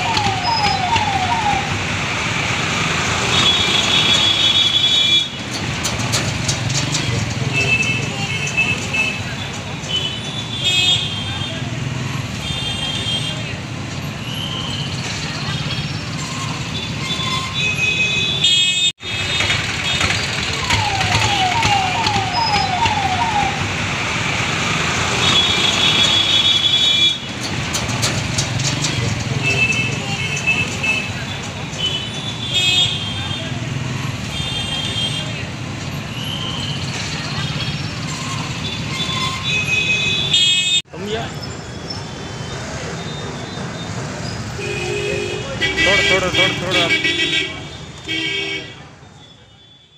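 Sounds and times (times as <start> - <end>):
vehicle engines running: 0.0 - 17.7, 19.0 - 48.1
crowd voices: 19.2 - 23.6, 28.3 - 39.2.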